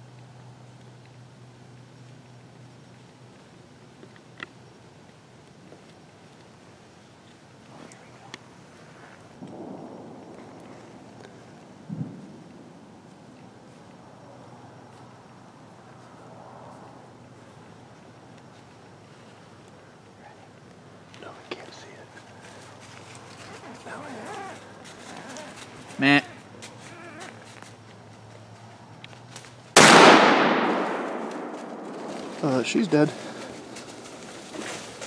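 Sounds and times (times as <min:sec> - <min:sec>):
faint background noise: 0:00.0 - 0:35.0
rustle: 0:00.0 - 0:35.0.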